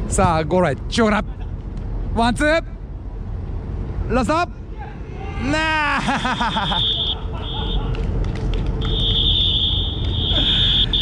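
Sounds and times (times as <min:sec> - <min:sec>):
shrill whistle blasts: 0:06.4 - 0:07.8, 0:08.8 - 0:11.0.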